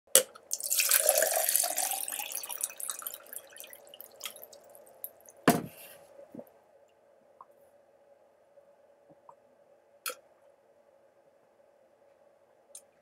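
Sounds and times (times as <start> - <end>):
water dripping: 0.5 - 5.4
water pouring into a glass: 0.5 - 5.4
knock: 5.5 - 5.8.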